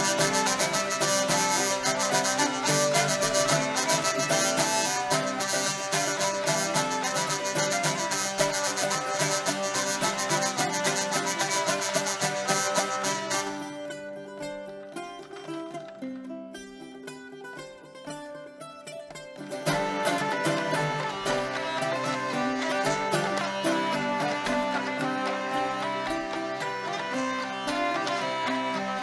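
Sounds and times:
hurdy-gurdy melody with drones: 0.0s - 29.0s
plucked string instrument: 0.0s - 29.0s.

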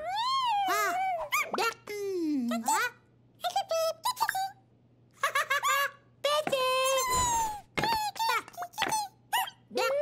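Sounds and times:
squeaky cartoon bird voice: 8.2s - 10.0s.

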